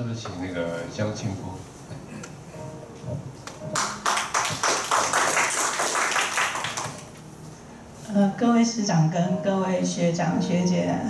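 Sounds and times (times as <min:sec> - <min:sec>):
audience applause: 0:03.7 - 0:07.2.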